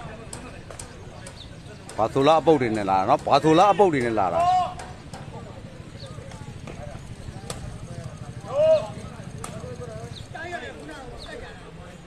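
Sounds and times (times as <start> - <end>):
people shouting: 3.7 - 5.0, 8.4 - 9.1.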